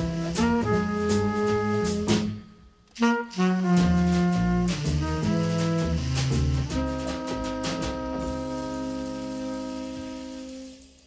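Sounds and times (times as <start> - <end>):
trumpet and saxophone chord: 0.0 - 11.0
recording hiss: 4.3 - 11.0.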